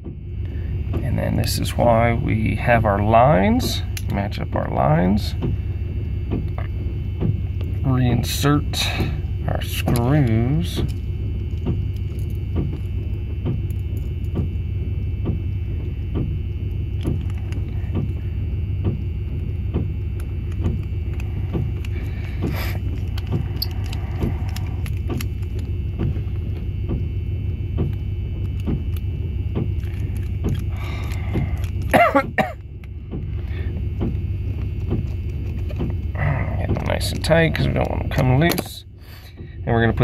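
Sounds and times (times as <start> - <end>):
steady low rumble: 0.0 - 40.0.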